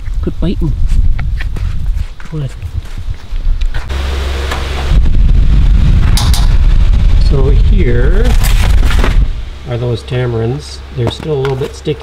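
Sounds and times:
electric fan humming: 0.2s - 12.0s.

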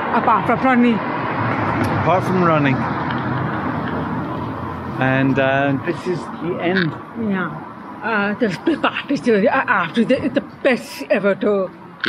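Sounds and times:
outdoor street noise: 0.0s - 12.0s.

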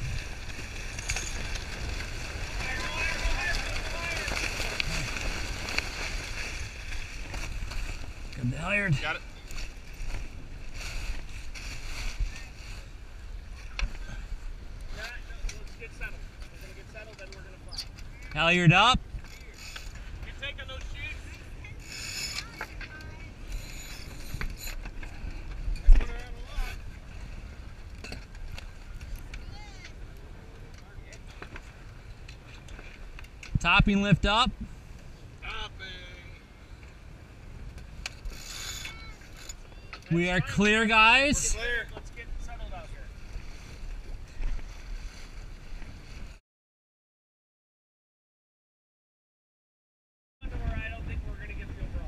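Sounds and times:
water rushing along hull: 0.0s - 16.9s, 34.5s - 46.3s
low wind rumble: 0.0s - 19.3s, 19.9s - 46.4s, 50.4s - 52.0s
rope rasping through pulley: 21.8s - 22.8s, 23.4s - 25.1s, 38.1s - 39.7s.

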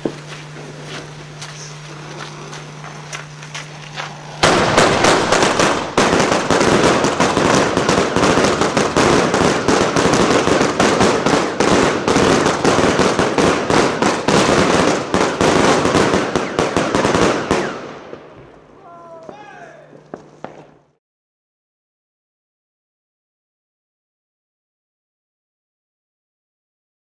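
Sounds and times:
fireworks barrage of shots: 4.1s - 20.8s.

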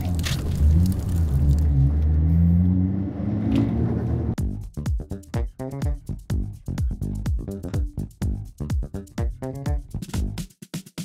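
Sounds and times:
background music: 4.4s - 10.5s
electronic dance music: 4.4s - 11.0s.

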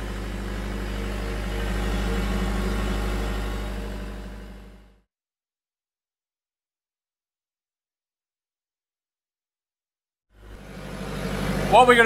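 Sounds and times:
diesel generators humming: 0.0s - 5.0s, 10.4s - 12.0s.

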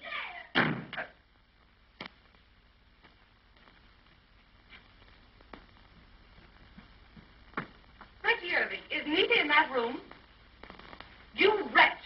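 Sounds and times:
door slamming shut: 0.6s - 1.0s.

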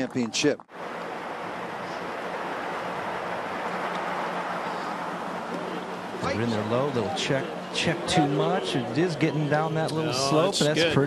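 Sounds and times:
soft outdoor ambience: 0.0s - 11.0s.

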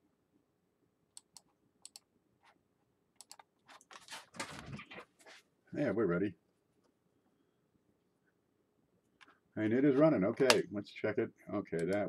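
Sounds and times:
computer keyboard keys clicking: 3.2s - 3.5s.

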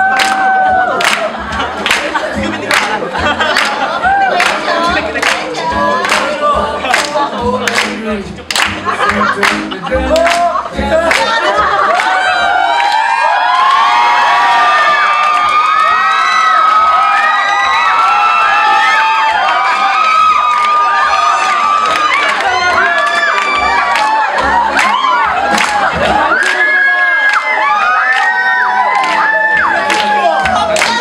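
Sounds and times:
crowd cheering and shouting: 0.0s - 31.0s
hand claps: 0.1s - 3.8s, 4.4s - 10.5s, 11.1s - 12.1s, 21.8s - 26.6s, 27.2s - 31.0s.

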